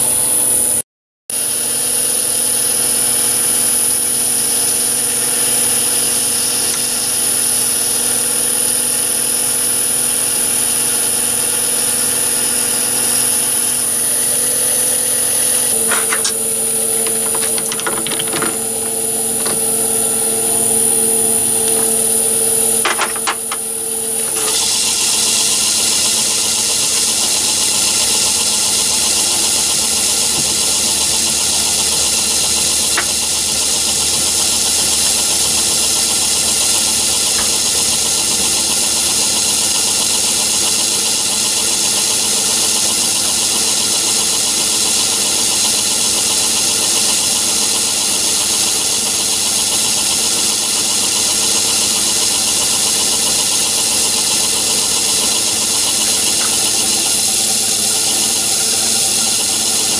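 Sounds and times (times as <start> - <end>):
lathe running with high whine: 0.0 - 59.9.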